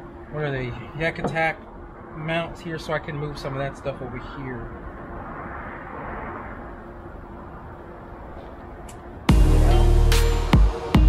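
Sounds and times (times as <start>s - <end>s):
passing vehicle rushing: 4.2s - 9.3s.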